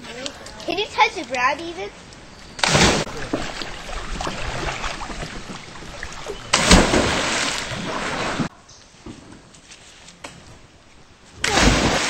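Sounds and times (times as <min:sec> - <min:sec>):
churning water: 0:02.6 - 0:08.5
loud splash into water: 0:02.6 - 0:08.5, 0:11.4 - 0:12.0.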